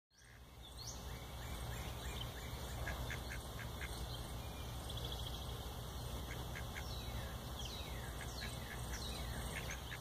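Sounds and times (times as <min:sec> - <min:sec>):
ducks quacking: 0:02.7 - 0:04.1, 0:06.2 - 0:07.1, 0:08.1 - 0:10.0.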